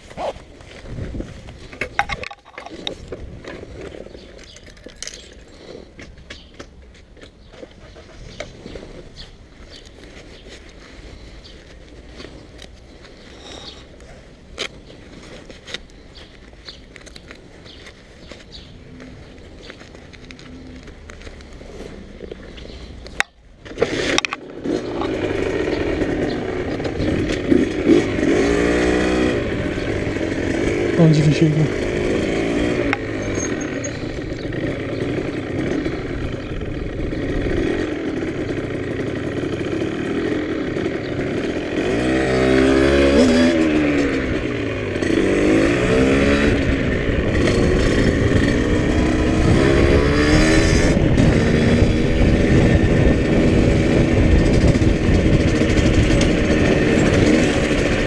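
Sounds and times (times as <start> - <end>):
motorcycle engine revving: 7.8 - 58.0.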